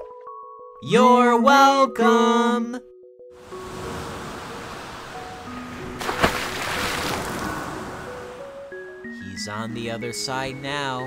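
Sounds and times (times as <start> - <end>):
ocean surf: 3.4 - 8.7.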